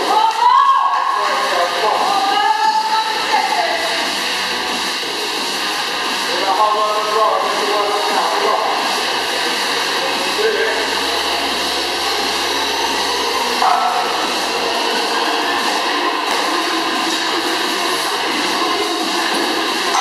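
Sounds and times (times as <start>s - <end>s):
music: 0.0s - 20.0s
rowing machine fan whirring: 1.4s - 20.0s.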